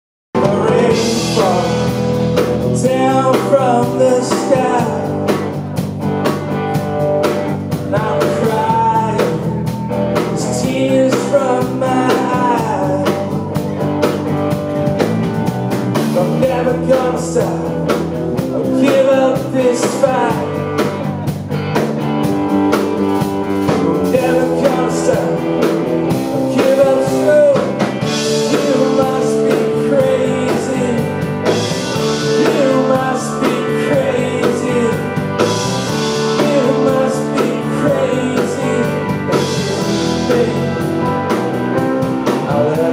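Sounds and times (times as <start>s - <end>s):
person singing: 0.4s - 5.6s, 7.7s - 14.0s, 16.0s - 21.4s, 23.7s - 42.9s
live rock band playing: 0.4s - 42.9s
steady drum beat: 0.4s - 42.9s
sustained guitar chords: 0.4s - 42.9s.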